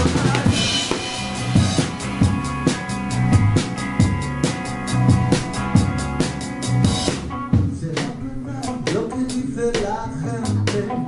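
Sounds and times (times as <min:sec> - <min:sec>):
quick steady cymbal strikes: 0:00.0 - 0:07.3
live band playing: 0:00.0 - 0:11.0
cymbal crash: 0:00.5 - 0:07.3.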